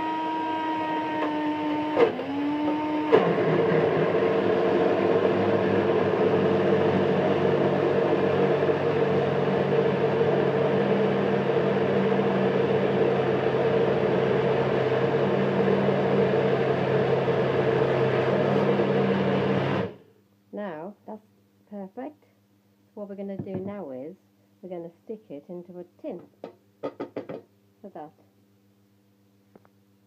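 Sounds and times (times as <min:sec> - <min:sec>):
blender motor running: 0:00.0 - 0:20.0.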